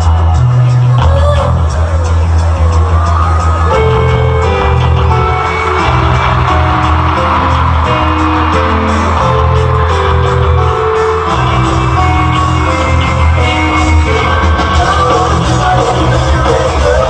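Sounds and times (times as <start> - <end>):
live rock band playing loudly: 0.0 - 17.0.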